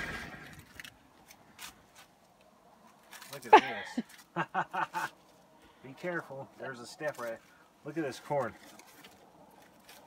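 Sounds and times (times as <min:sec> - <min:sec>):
dry corn husk crackling: 0:00.0 - 0:10.0.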